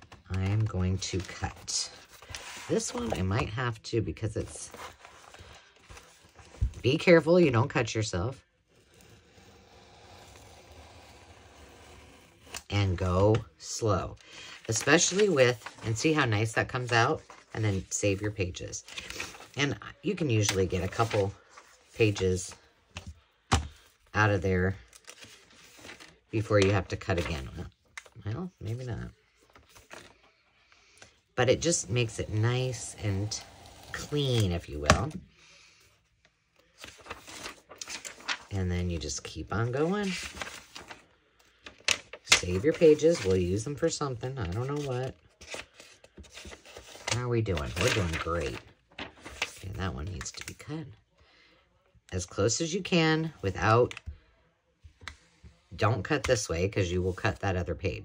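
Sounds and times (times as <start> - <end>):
paper pages rustling: 0.0 - 7.1, 8.8 - 24.1, 24.7 - 35.2, 36.2 - 50.6.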